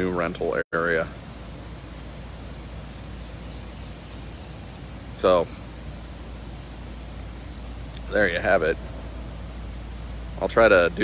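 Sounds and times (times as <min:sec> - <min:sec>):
constant low rumble: 0:00.0 - 0:11.0.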